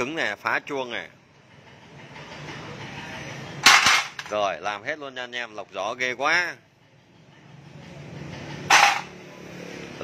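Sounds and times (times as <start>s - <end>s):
metal part clattering onto tray: 3.6s - 4.4s, 8.7s - 9.1s.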